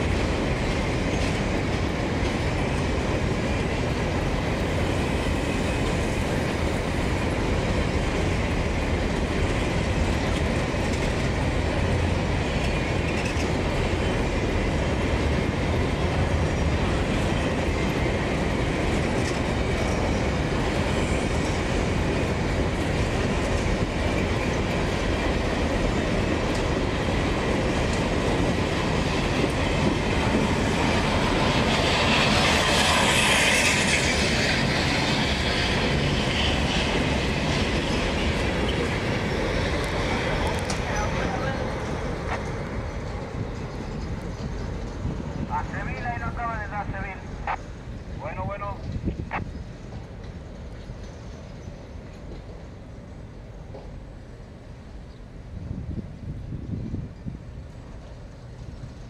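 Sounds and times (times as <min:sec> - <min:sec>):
freight train rolling on rails: 0:00.0 - 0:59.0
wheels clickety-clack over rail joints: 0:00.0 - 0:59.0.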